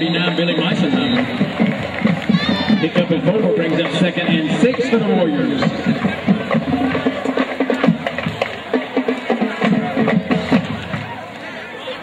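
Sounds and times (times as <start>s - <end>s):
band music with drums: 0.0s - 11.3s.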